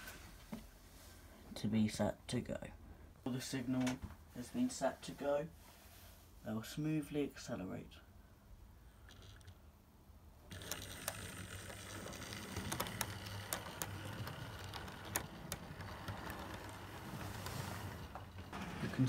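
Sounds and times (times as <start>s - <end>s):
model train motor whirr: 10.5s - 18.8s
wheels clicking over rail joints: 10.5s - 19.0s.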